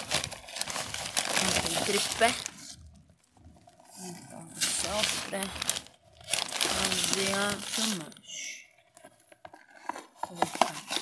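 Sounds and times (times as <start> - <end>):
hands rustling and crinkling: 0.0 - 3.9, 4.5 - 8.2
person speaking: 1.2 - 5.9, 6.5 - 8.8, 10.2 - 11.0.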